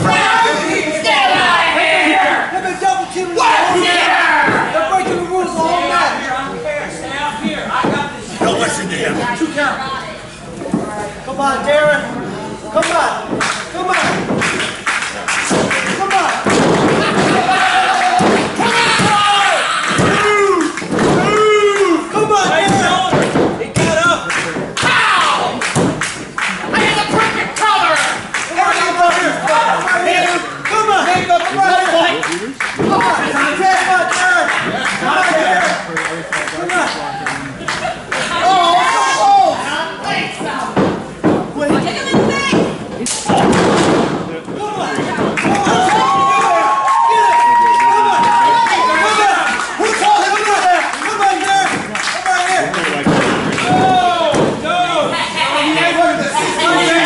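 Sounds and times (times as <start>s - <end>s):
wrestlers thudding on ring mat: 15.4s - 21.6s, 22.2s - 27.6s, 40.4s - 46.8s, 52.9s - 54.7s.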